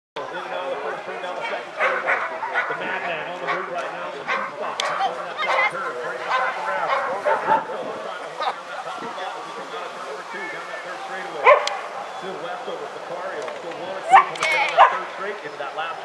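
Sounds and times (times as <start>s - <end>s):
people's voices: 0.2s - 16.0s
dogs barking: 1.4s - 7.7s, 11.4s - 11.9s, 14.1s - 15.1s.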